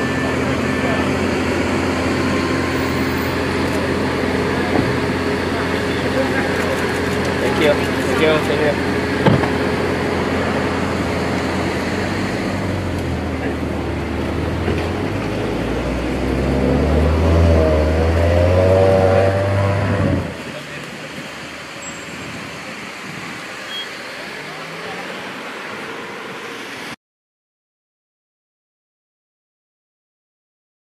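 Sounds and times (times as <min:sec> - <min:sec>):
voices: 0:00.0 - 0:12.3, 0:20.4 - 0:26.6
car engine running: 0:00.0 - 0:23.6
street noise: 0:00.0 - 0:27.0.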